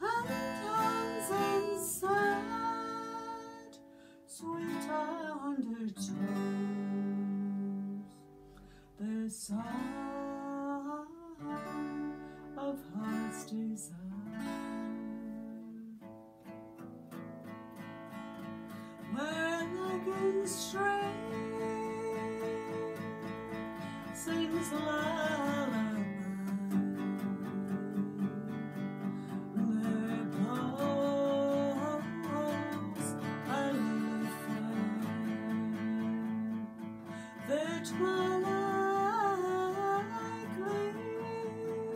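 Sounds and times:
woman singing: 0.0 - 8.3, 9.0 - 16.0, 19.0 - 41.9
acoustic guitar strumming: 0.0 - 8.8, 9.5 - 41.9.

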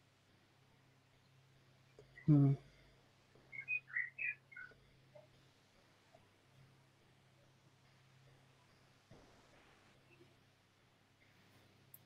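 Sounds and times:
small bird chirping: 3.4 - 5.3.

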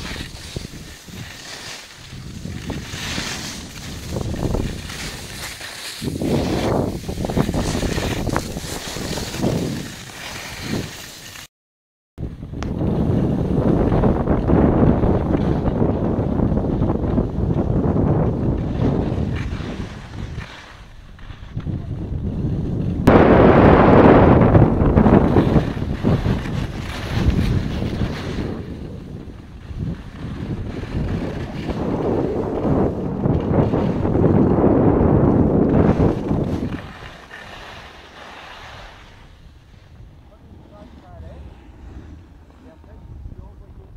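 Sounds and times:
wind rushing over microphone: 0.0 - 11.3, 12.2 - 43.9.

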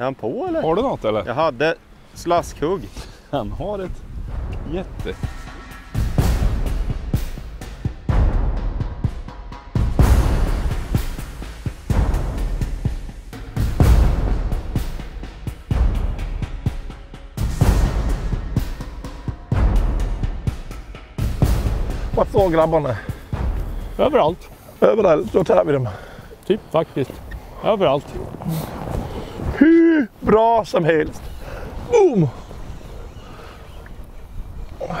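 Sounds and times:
deep drum hits: 4.2 - 11.2
soundtrack music: 4.3 - 22.6.

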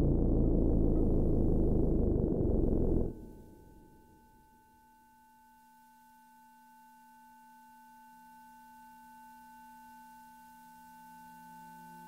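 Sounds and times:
electronic sine tone drone: 0.0 - 4.8.

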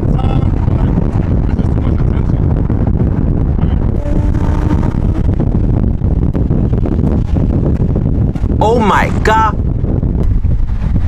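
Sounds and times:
wind rush on microphone: 0.0 - 11.0
car engine accelerating: 0.5 - 7.4.

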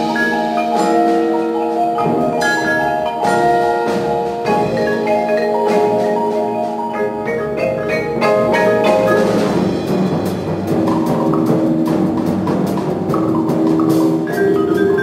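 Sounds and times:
drums and percussion: 0.0 - 15.0
marimbas and vibraphones: 0.0 - 15.0.

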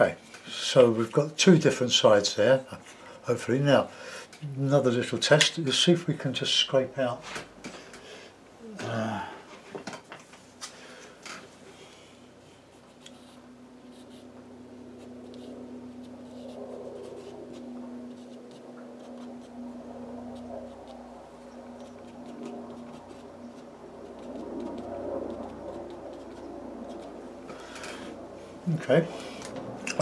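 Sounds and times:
low steady hum: 0.0 - 30.0
scraping on watercolour paper: 12.7 - 14.4, 15.0 - 19.6, 20.3 - 21.0, 21.7 - 27.2.

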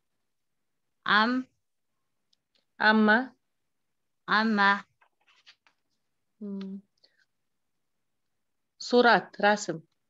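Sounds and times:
faint scratchy rustles: 4.9 - 7.4
person speaking: 6.4 - 7.0.

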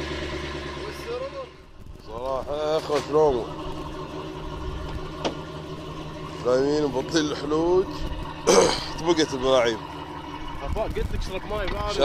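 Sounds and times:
rumbling background: 0.0 - 12.0
steady low hum: 0.0 - 12.0.

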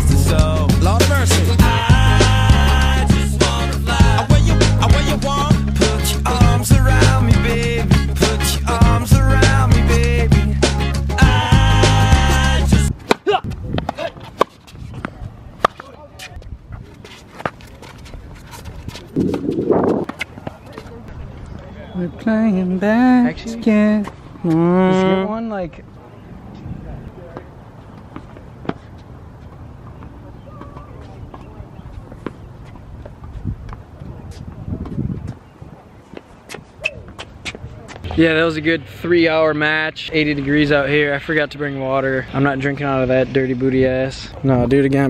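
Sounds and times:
background music: 0.0 - 12.9
racket striking ball: 13.0 - 15.9
footsteps on court: 13.0 - 21.7, 26.5 - 38.2
short rushing noise: 19.0 - 20.2.

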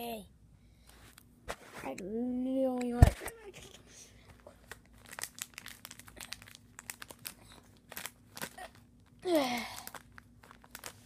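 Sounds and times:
plastic binder pages crinkling: 4.4 - 11.0.

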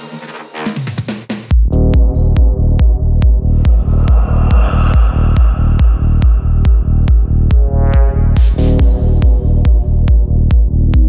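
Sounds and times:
kick drum: 1.5 - 11.0
rolling bassline: 1.5 - 11.0.

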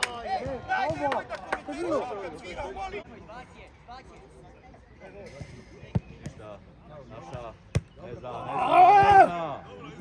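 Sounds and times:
distant players shouting: 8.2 - 9.6.

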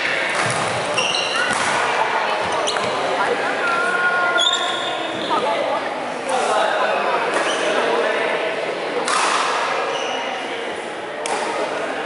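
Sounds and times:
rackets striking shuttlecock: 0.0 - 1.9, 9.0 - 9.7
voices echoing in hall: 0.0 - 12.0
sneakers squeaking on wooden floor: 0.4 - 1.6, 2.3 - 3.2, 4.3 - 5.5.

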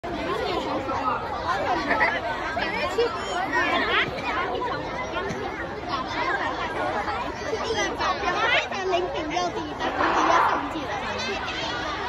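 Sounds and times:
crowd chattering and calling out: 0.0 - 12.0.

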